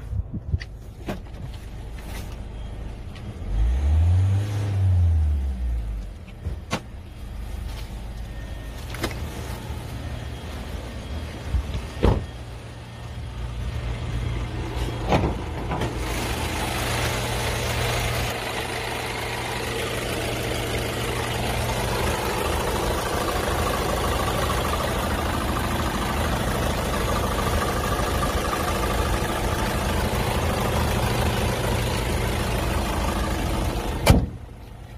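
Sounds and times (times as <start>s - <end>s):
car engine idling: 5.4s - 34.9s.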